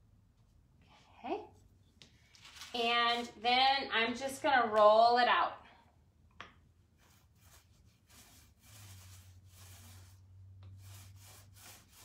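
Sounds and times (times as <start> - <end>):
foam roller swishing through paint: 7.0 - 12.0.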